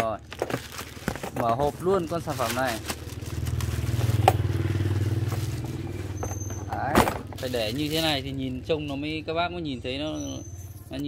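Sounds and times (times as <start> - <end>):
vehicle engine passing: 1.6 - 9.8.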